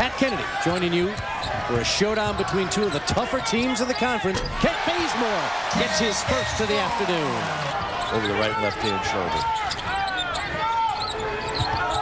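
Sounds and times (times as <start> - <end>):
arena noise: 0.0 - 12.0
basketball bouncing on court: 1.1 - 3.3.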